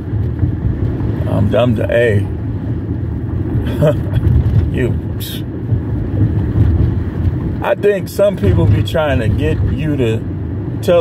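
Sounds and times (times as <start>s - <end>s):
car interior rumble: 0.0s - 11.0s.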